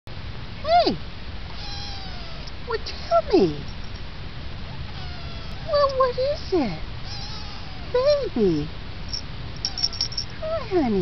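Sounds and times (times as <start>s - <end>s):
kitten meowing: 1.5s - 2.5s, 4.7s - 6.0s, 7.0s - 8.0s, 9.6s - 10.2s.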